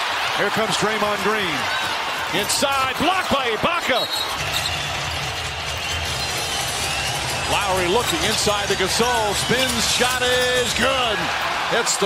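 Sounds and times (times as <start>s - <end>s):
crowd of voices: 0.0s - 12.0s.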